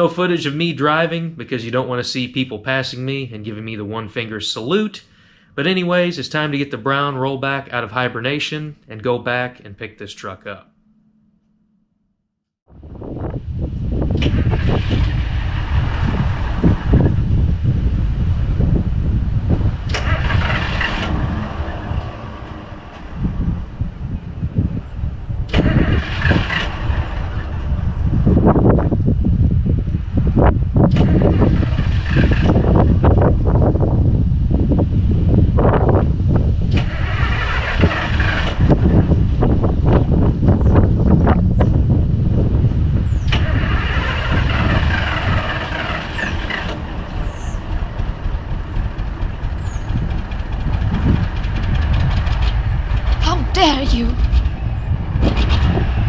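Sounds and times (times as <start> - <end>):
truck engine starting and revving: 13.9 - 17.8, 19.4 - 23.7, 25.5 - 28.0, 30.9 - 33.0, 36.6 - 39.6, 43.3 - 47.6.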